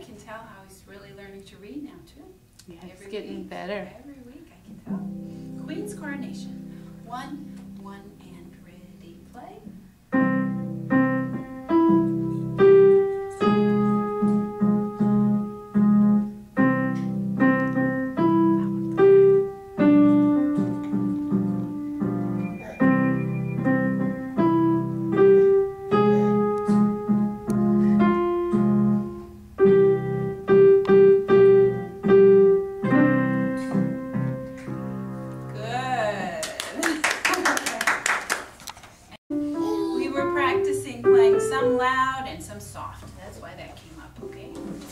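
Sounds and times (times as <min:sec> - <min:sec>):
digital piano playing: 0:04.9 - 0:35.8, 0:39.3 - 0:42.4
person speaking: 0:22.5 - 0:22.9, 0:39.5 - 0:42.0
hand clapping: 0:36.4 - 0:38.9.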